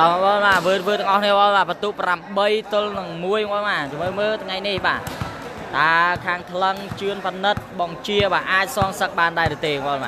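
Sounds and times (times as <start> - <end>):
volleyball being struck: 4.0 - 9.6.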